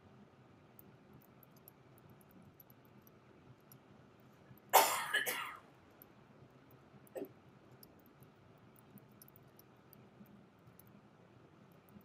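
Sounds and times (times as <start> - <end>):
person coughing: 4.8 - 5.6.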